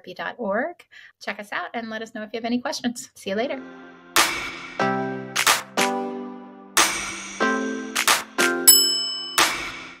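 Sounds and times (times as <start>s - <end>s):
jingle with ringing hits: 8.7s - 9.8s
high bell-like ding: 8.7s - 9.9s.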